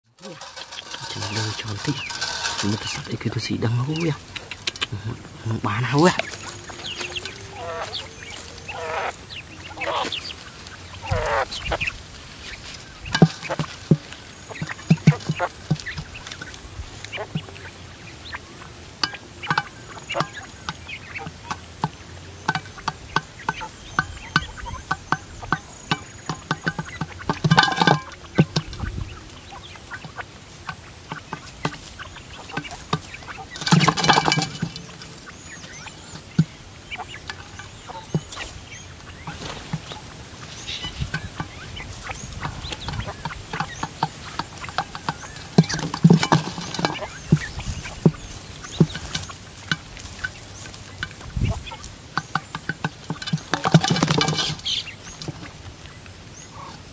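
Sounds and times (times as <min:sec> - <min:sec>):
scuffling bursts: 0:00.0 - 0:17.6
bird chirping calls: 0:00.0 - 0:56.9
birds pecking on metal lid: 0:00.1 - 0:56.9.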